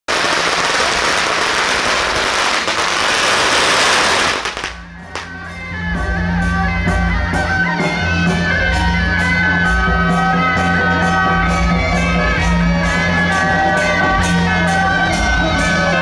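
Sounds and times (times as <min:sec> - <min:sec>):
firecrackers crackling: 0:00.1 - 0:05.4
music with steady beat: 0:04.2 - 0:16.0.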